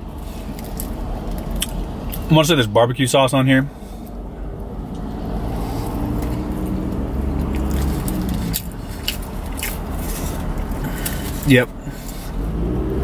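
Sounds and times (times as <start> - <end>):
steady low rumble: 0.0 - 12.7
person chewing: 0.2 - 2.2, 5.5 - 12.4.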